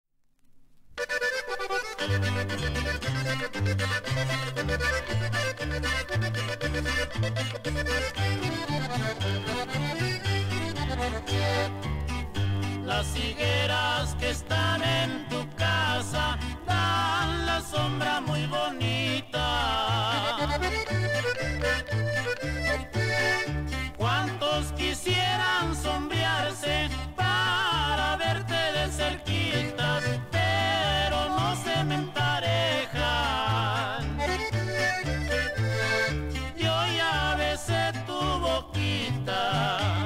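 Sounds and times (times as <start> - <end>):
accordion melody: 1.0 - 40.0
alternating bass line: 1.8 - 40.0.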